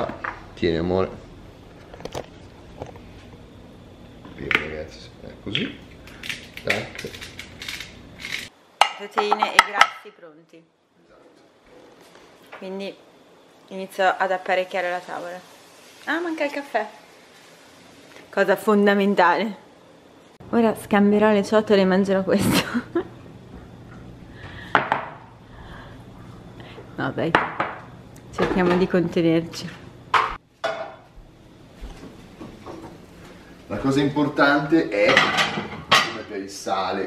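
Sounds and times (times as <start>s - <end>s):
spice mill grinding: 6.1s - 8.5s.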